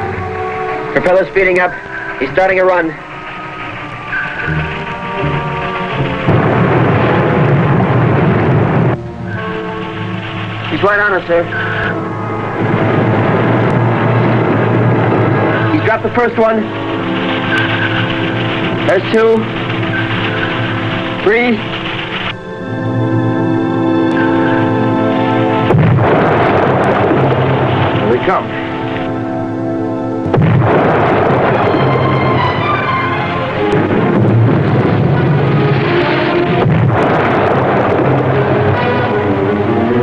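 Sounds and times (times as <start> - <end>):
dramatic film music: 0.0 - 40.0
depth charges exploding: 2.1 - 22.4, 25.2 - 39.4
man's voice: 15.7 - 16.7, 18.8 - 19.5, 21.2 - 21.7, 28.0 - 28.6.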